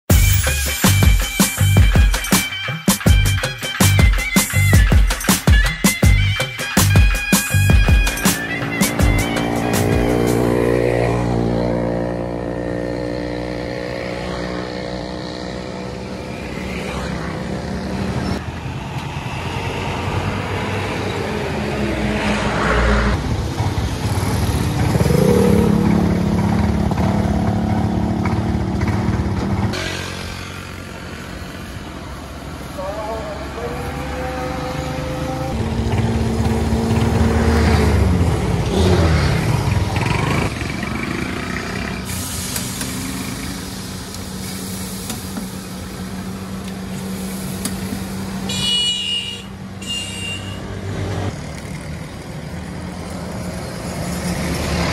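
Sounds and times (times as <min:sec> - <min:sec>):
road traffic passing: 0:00.1 - 0:54.9
background voices: 0:32.6 - 0:35.7.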